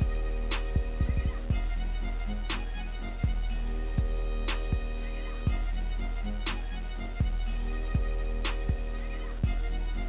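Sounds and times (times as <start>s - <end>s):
music with steady drum beat: 0.0s - 10.0s.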